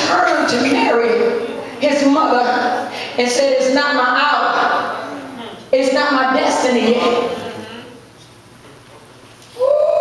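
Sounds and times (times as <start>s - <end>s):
person's long vocal cry: 9.6s - 10.0s.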